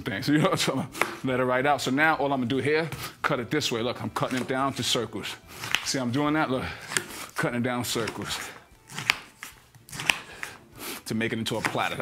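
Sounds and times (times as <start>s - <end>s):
knife slicing through pineapple: 4.2s - 12.0s.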